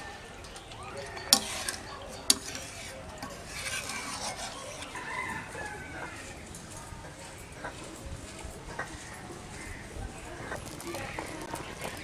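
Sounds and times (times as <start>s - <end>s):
ladle stirring in metal pan: 0.6s - 9.2s
rooster crowing: 4.9s - 6.5s.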